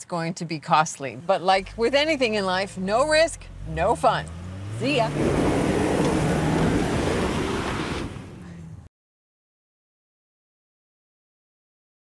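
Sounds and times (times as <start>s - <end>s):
road and wind noise: 0.0s - 8.9s
car engine hum: 1.0s - 8.9s.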